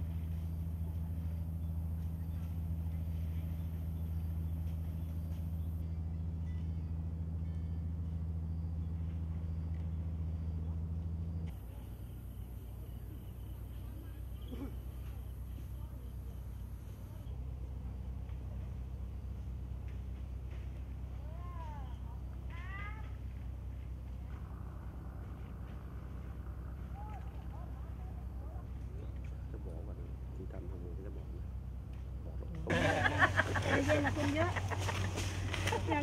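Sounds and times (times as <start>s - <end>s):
engine idling: 0.0s - 36.0s
low rumble: 0.0s - 36.0s.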